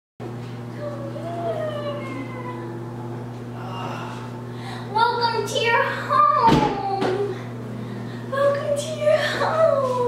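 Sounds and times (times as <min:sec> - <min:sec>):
steady low hum: 0:00.2 - 0:10.0.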